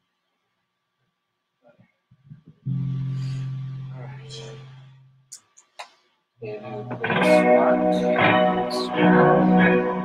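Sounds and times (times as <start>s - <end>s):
electric guitar: 6.4s - 10.0s.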